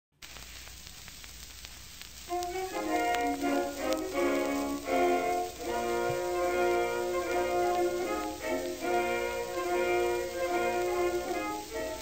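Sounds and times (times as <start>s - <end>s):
record surface hiss and crackle: 0.1s - 12.0s
orchestral music: 2.3s - 12.0s.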